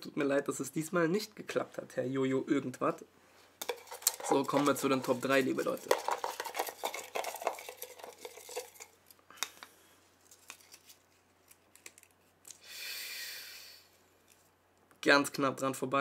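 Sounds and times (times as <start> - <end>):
paper crinkling: 3.6 - 9.0, 10.2 - 12.4.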